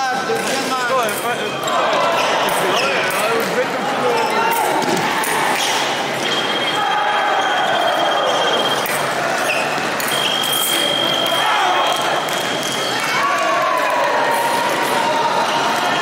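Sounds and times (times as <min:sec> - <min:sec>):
echoing voices: 0:00.0 - 0:16.0.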